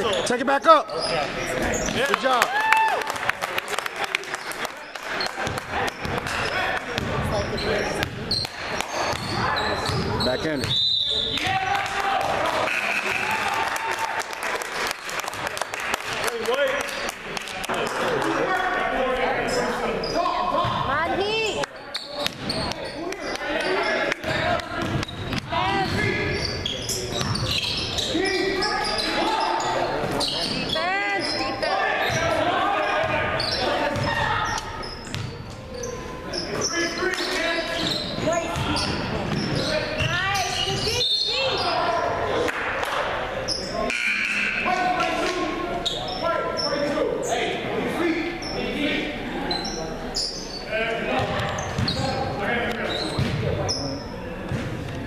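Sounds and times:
voices of players and spectators: 0.0 - 55.0
basketball bouncing on wood floor: 53.2 - 53.5.

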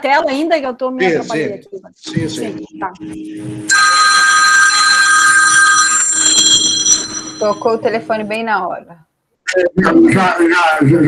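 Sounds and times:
telephone ringing: 3.7 - 8.1.

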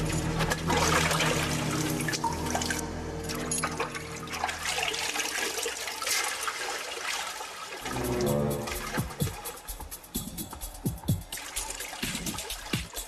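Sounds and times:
low sustained drone: 7.8 - 9.2.

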